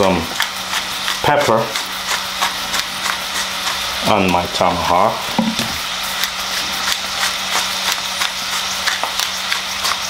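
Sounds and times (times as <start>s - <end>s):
pepper mill grinding: 0.0s - 10.0s.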